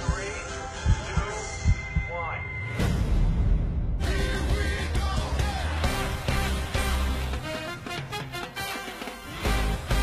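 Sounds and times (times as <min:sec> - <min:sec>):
slow heartbeat thumps: 0:00.0 - 0:04.0
loud band music with heavy bass: 0:04.0 - 0:10.0.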